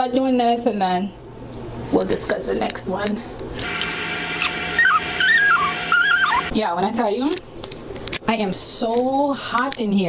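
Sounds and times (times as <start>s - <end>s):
whirring hiss with hum: 0.1s - 9.2s.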